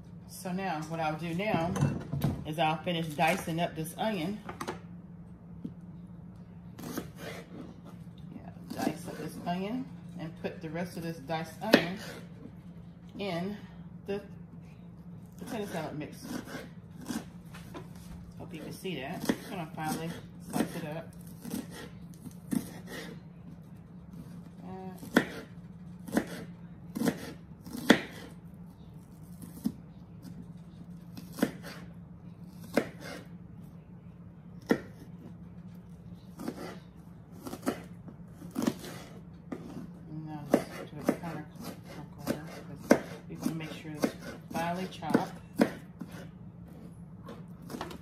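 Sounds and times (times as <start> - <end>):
low steady hum: 0.0 - 48.0
knife chopping on cutting board: 11.6 - 12.3, 18.6 - 23.2, 25.0 - 28.3, 31.1 - 31.8, 32.6 - 33.3, 34.6 - 35.3, 36.4 - 36.8, 37.4 - 48.0.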